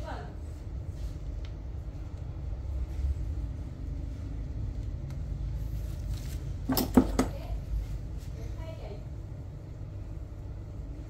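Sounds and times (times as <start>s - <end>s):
low background rumble: 0.0s - 11.0s
tools knocking on work surface: 6.7s - 7.4s.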